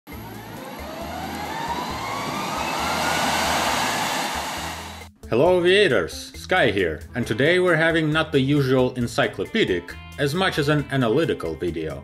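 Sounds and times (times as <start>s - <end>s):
jet engines whining: 0.1s - 5.1s.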